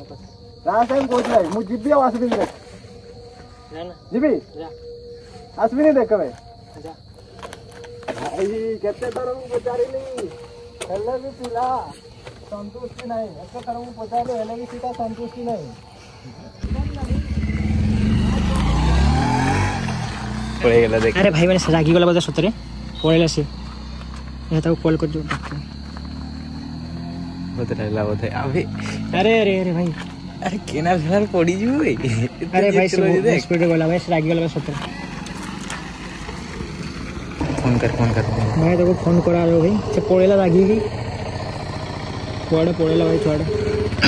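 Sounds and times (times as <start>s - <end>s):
motorcycle engine passing: 16.6s - 44.0s.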